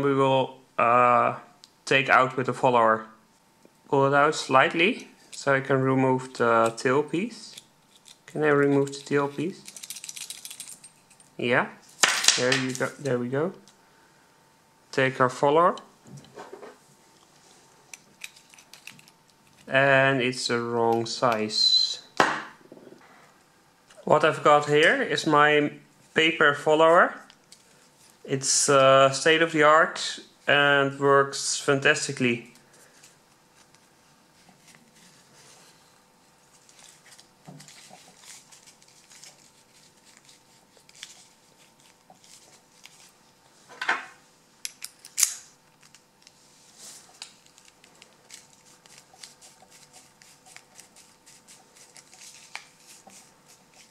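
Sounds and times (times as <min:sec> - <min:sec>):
soft rustle: 0:32.7 - 0:43.7.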